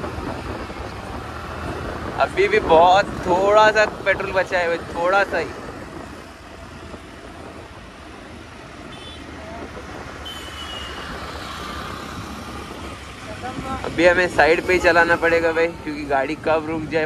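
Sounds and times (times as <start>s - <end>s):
road and wind noise: 0.0s - 17.0s.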